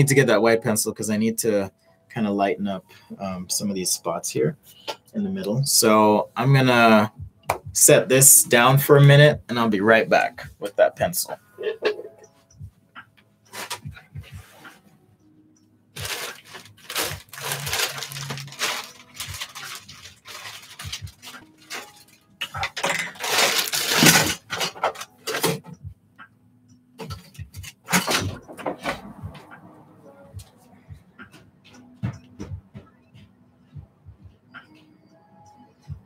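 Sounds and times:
objects clattering and rustling: 0:11.2 - 0:12.4, 0:13.5 - 0:14.8, 0:16.0 - 0:25.8, 0:27.0 - 0:29.6.

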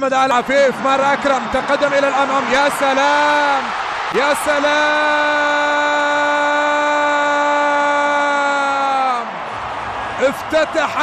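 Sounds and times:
man shouting goal call: 0:04.1 - 0:09.3.

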